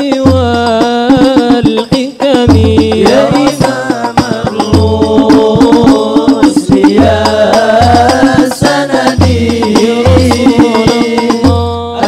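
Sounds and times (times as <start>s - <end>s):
hand-struck frame drums: 0.0s - 11.8s
man singing into a microphone: 0.0s - 12.0s.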